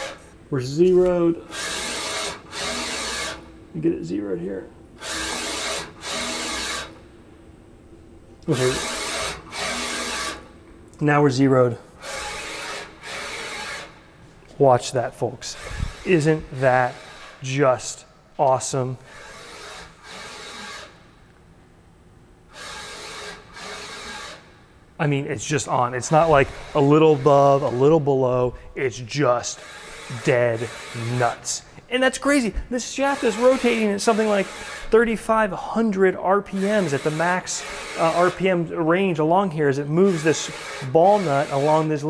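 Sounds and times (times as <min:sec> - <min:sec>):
servo motor driving linear stage: 0:00.0 - 0:03.6, 0:05.0 - 0:07.0, 0:08.4 - 0:10.5, 0:12.0 - 0:14.0, 0:15.4 - 0:21.0, 0:22.5 - 0:24.5, 0:25.4 - 0:31.6, 0:32.2 - 0:35.8, 0:36.5 - 0:42.0.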